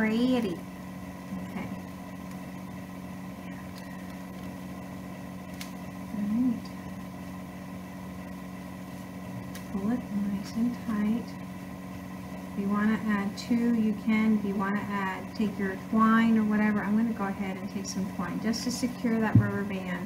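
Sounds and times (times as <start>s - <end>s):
low appliance hum: 0.0s - 20.0s.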